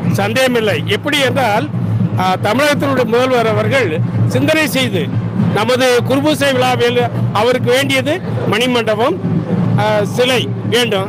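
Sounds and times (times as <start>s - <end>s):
man speaking: 0.0s - 9.2s, 9.8s - 11.0s
steady low hum: 0.0s - 11.0s.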